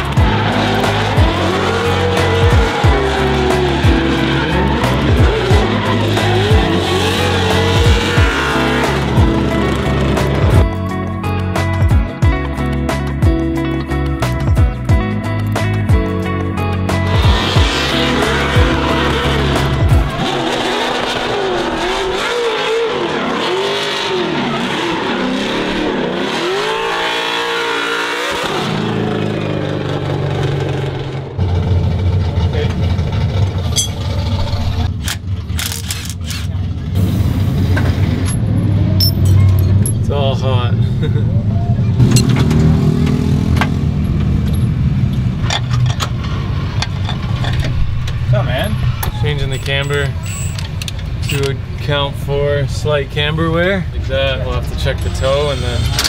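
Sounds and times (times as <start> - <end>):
car engine revving: 0.0 - 11.4, 16.6 - 56.0.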